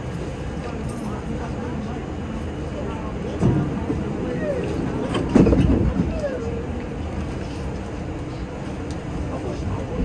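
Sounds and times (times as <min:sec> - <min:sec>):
subway car wheels rumbling on track: 0:00.0 - 0:10.0.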